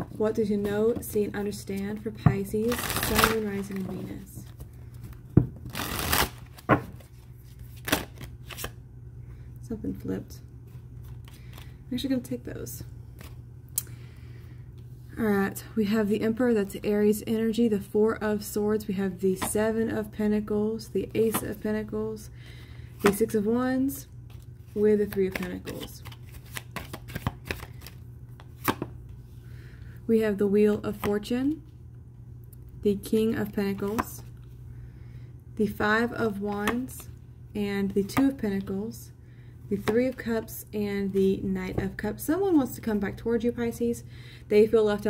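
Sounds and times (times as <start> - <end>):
cards rustling: 0.5 - 8.8, 24.3 - 28.9.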